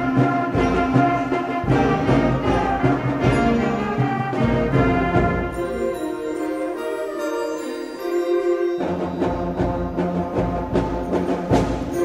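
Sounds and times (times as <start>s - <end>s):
accented drum strikes: 0.0s - 5.7s, 9.0s - 12.0s
concert band playing: 0.0s - 12.0s.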